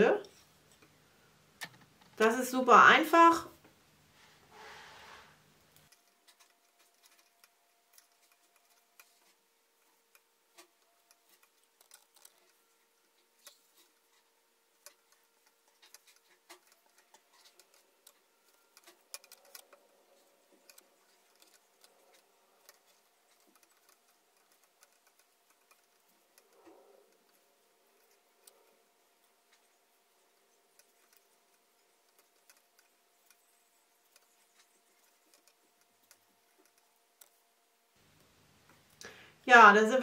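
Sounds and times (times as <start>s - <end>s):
wooden knitting needles clicking: 1.6s - 2.2s, 5.7s - 37.4s.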